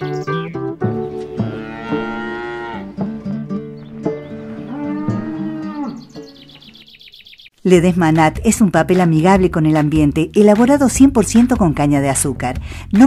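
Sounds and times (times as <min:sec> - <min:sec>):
light background music: 0:00.0 - 0:13.0
cow mooing: 0:01.1 - 0:06.2.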